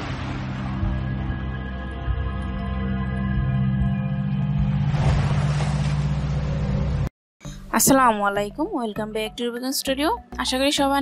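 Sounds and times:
steady low drone: 0:00.0 - 0:07.7.

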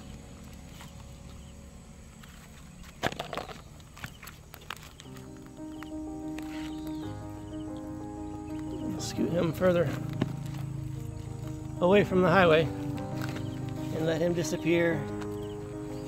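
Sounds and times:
background music with sustained notes: 0:00.0 - 0:16.0
twigs and stones rustling: 0:00.0 - 0:16.0.

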